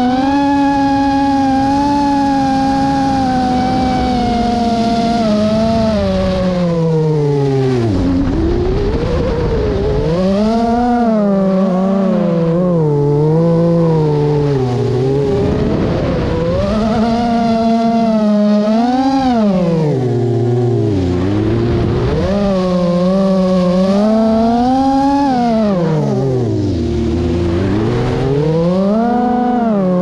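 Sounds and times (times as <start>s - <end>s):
drone propellers whining: 0.0s - 30.0s.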